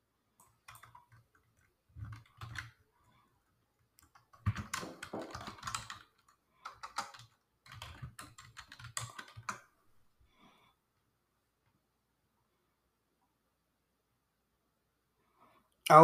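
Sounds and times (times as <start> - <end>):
typing on computer keyboard: 0.4 - 2.8, 4.0 - 9.7.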